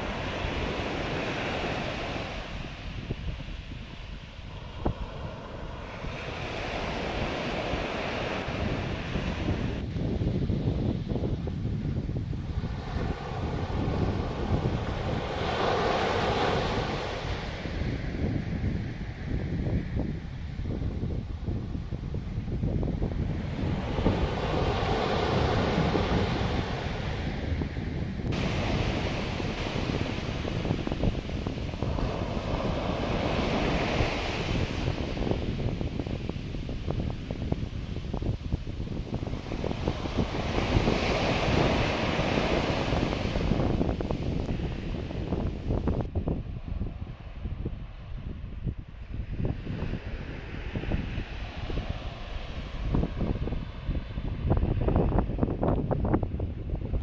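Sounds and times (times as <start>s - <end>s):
waves washing up a beach: 0.0s - 55.3s
wind buffeting microphone: 0.0s - 57.0s.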